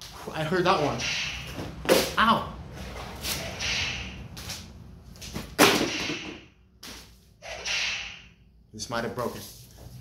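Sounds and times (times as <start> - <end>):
whip swishing: 3.2 - 4.6
whip cracking: 3.4 - 4.6.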